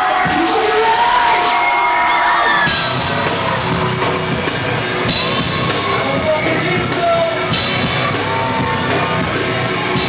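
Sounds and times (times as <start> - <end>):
crowd cheering and screaming: 0.0 - 10.0
rock band playing: 0.0 - 10.0.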